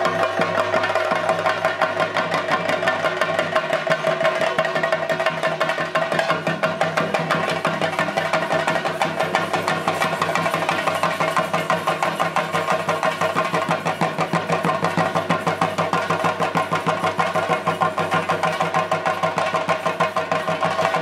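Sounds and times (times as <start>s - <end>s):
drums beating fast rhythm: 0.0s - 21.0s.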